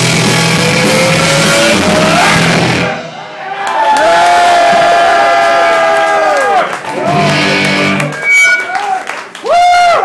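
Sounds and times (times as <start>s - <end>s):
live band playing: 0.0s - 3.5s, 6.9s - 9.1s
crowd cheering: 1.9s - 10.0s.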